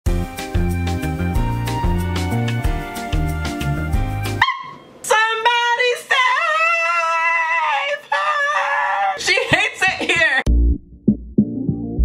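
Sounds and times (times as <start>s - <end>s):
intro music: 0.1s - 4.6s, 10.5s - 12.0s
woman singing long high notes: 4.4s - 9.2s.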